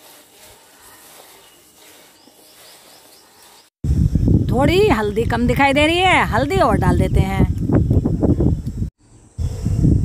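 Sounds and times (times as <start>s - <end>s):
gusty wind rumble: 3.8s - 10.0s.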